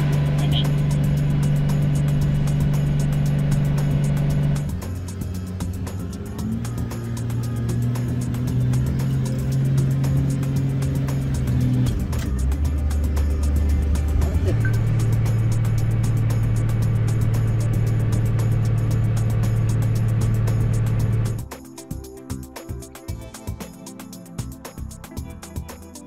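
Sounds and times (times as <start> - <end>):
snowplow engine drone: 0.0 - 21.4
background music: 0.0 - 26.0.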